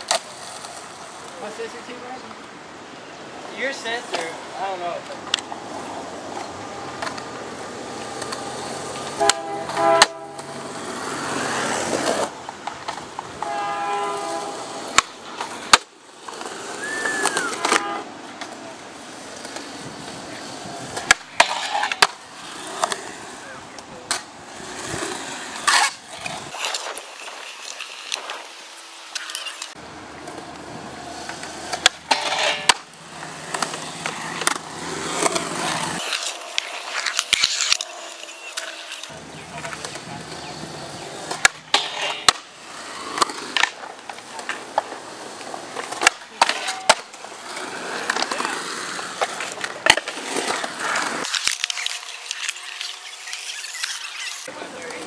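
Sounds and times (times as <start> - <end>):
skateboard clacking on ground: 0.0 - 2.5, 5.0 - 55.0
skateboard wheels rolling on concrete: 0.0 - 55.0.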